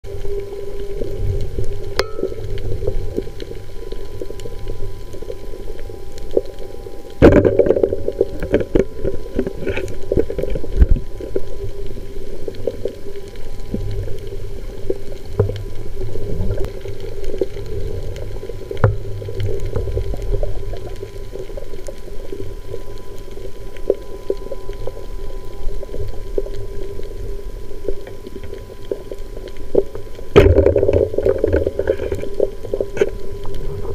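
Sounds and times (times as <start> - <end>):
clicks and crackles: 0.1 - 33.9
constant hum: 0.1 - 33.9.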